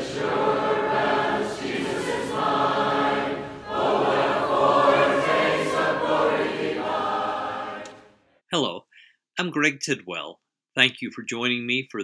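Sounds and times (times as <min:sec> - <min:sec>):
choir singing: 0:00.0 - 0:08.2.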